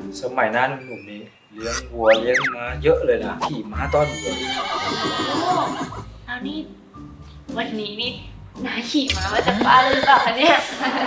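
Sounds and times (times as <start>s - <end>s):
horse neighing: 1.6s - 2.5s, 3.4s - 6.1s, 9.1s - 10.6s.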